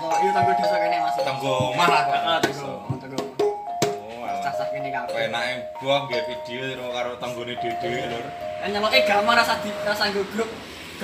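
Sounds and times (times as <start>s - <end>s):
ringing metallophone notes: 0.0s - 10.5s.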